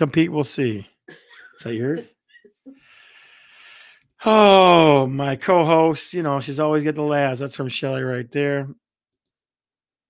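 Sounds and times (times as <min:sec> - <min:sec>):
person breathing out: 0:02.8 - 0:04.1.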